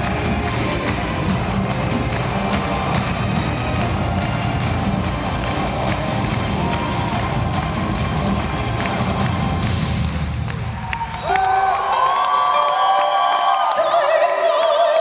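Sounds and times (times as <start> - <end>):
crowd cheering and whooping: 0.0 - 14.5
crowd whistles: 10.7 - 13.6.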